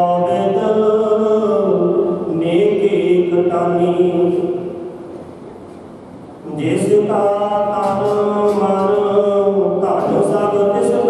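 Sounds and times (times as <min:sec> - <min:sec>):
man chanting hymns into microphone: 0:00.0 - 0:04.7, 0:06.4 - 0:11.0.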